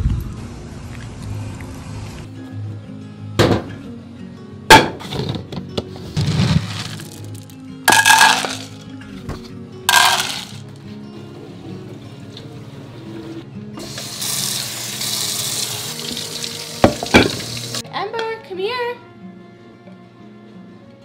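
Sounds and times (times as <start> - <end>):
background music: 0.4 - 21.0
kibble rattling into plastic bowl: 6.3 - 8.8, 9.9 - 10.6
tap running water: 13.8 - 17.8.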